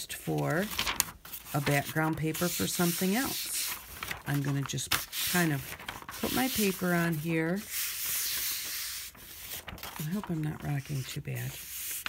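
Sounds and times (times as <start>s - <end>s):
palm rubbing paper: 0.6s - 12.0s.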